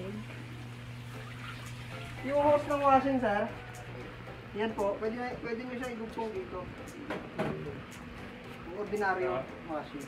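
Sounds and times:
faint trickling water: 0.0s - 3.3s
washing machine humming: 0.0s - 10.0s.

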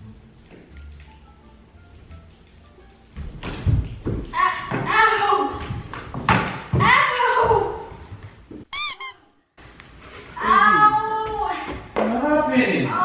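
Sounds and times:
high-pitched squeaks: 8.7s - 9.3s.

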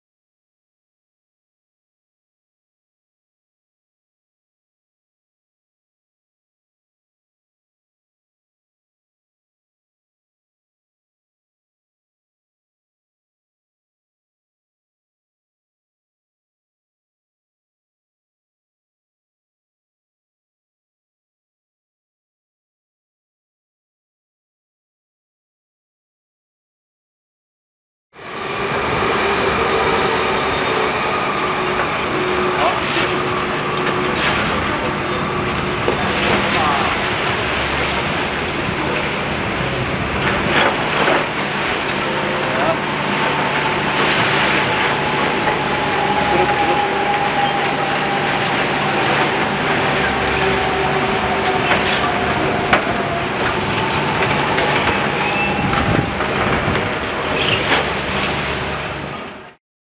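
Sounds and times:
excavator engine and hydraulic hum: 28.2s - 59.6s.

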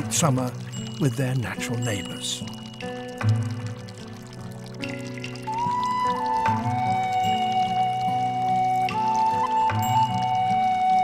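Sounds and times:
music with sustained notes: 0.0s - 11.0s
water pouring into stone basin: 0.0s - 11.0s.

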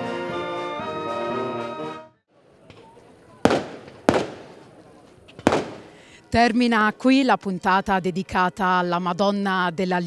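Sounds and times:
fireworks bangs with echo: 2.8s - 6.1s.

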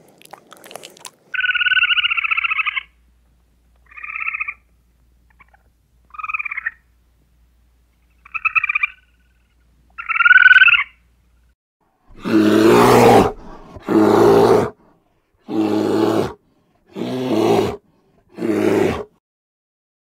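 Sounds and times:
squirrel chatter calls: 1.4s - 2.9s.

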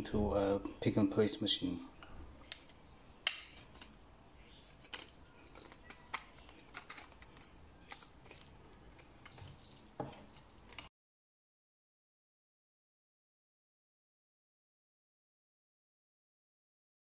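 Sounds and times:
plastic parts clicking: 2.4s - 4.0s, 4.7s - 10.9s.

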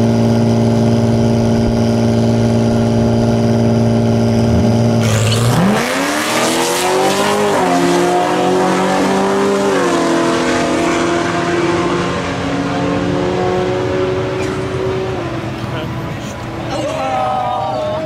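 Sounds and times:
car engine revving: 1.2s - 16.5s
cars accelerating with tyre noise: 1.6s - 17.8s.

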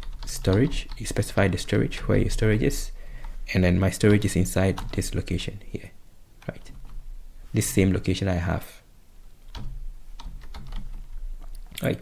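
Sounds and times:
computer keyboard typing: 0.0s - 1.2s, 4.0s - 5.2s, 9.4s - 11.6s.

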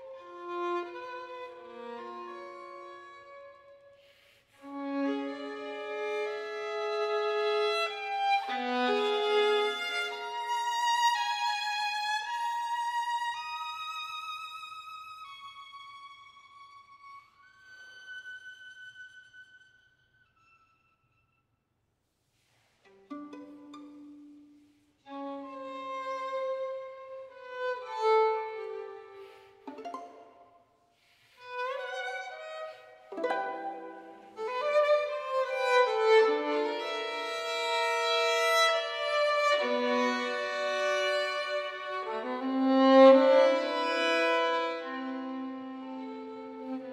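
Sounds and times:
solo violin bowed: 0.0s - 21.4s, 22.3s - 46.9s.

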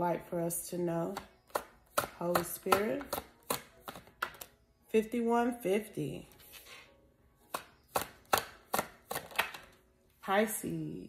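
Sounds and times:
cards slapping against deck: 1.2s - 4.5s, 7.5s - 9.8s
cards being shuffled: 7.6s - 9.8s.

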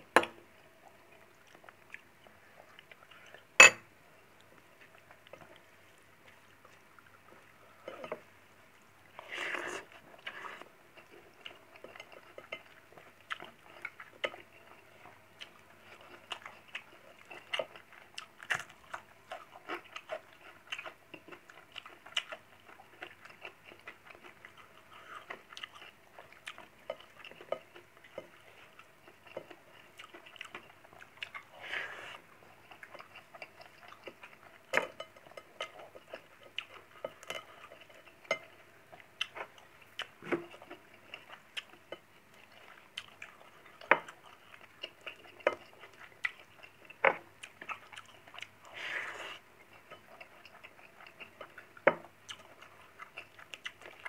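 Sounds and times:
person chewing: 9.1s - 54.0s.

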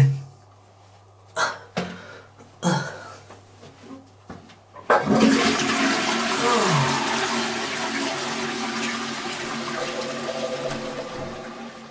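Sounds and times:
toilet flushing: 4.9s - 11.9s.

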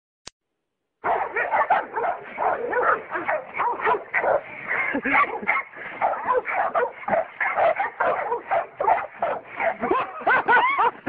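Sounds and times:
dog barking rapidly: 1.0s - 10.9s.

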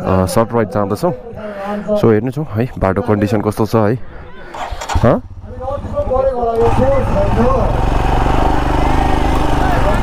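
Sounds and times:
motorcycle engine starting and revving: 4.5s - 10.0s.

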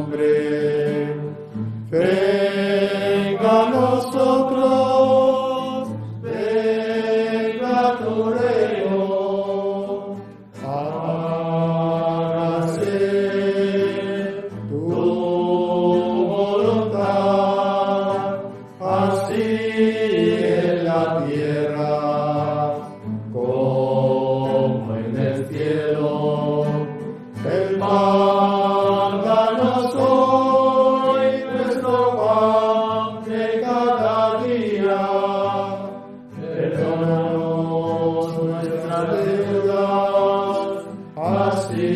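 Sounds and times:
men chanting a hymn: 0.0s - 41.9s.

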